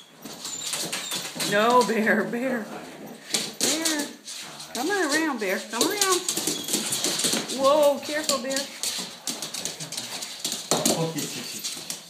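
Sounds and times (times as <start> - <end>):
dog claws clicking on hard floor: 0.2 - 12.0.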